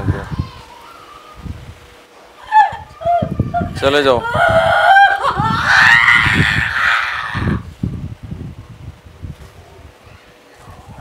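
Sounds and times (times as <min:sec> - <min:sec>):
woman screaming: 0:02.4 - 0:07.6.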